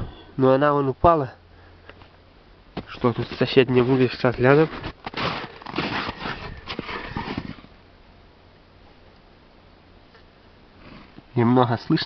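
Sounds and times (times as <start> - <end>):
wooden board scraping and rustling: 2.8 - 7.8.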